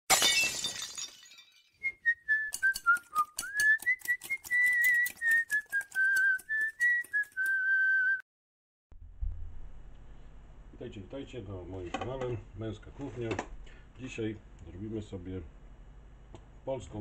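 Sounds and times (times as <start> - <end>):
whistled melody: 1.8 - 8.2
sharp rhythmic clicks: 2.5 - 7.6.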